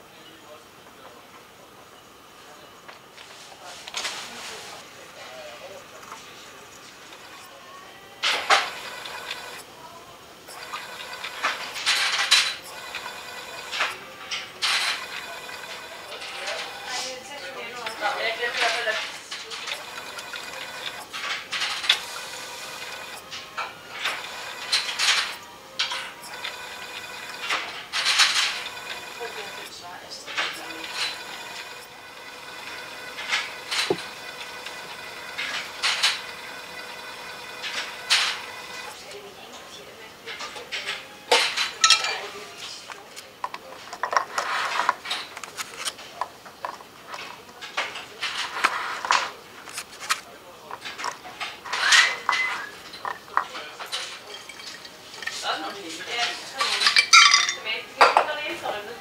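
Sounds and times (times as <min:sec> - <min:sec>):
faint equipment hum: 0:00.0 - 0:59.0
glassware clinking: 0:51.9 - 0:55.4, 0:56.6 - 0:58.3.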